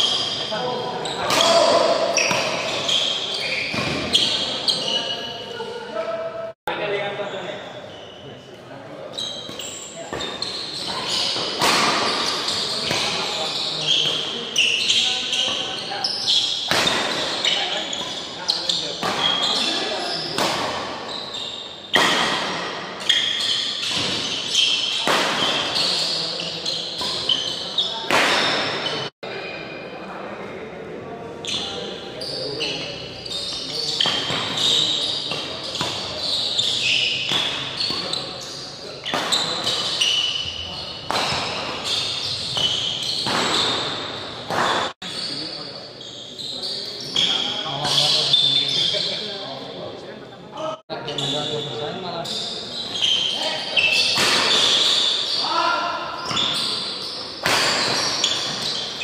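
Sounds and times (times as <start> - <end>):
shoes squeaking on court floor: 0.0 - 6.1, 7.2 - 29.9, 31.3 - 49.8, 51.0 - 59.0
racket hitting shuttlecock: 19.0 - 19.4, 20.4 - 21.0, 21.9 - 22.8.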